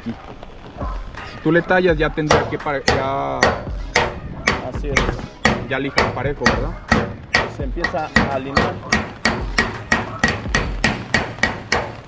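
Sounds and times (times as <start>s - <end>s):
hammer tapping steel panel: 2.2s - 12.0s.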